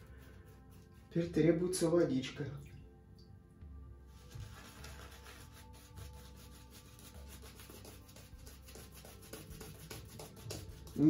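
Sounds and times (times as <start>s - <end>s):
shaving brush scrubbing lather: 4.2s - 11.0s.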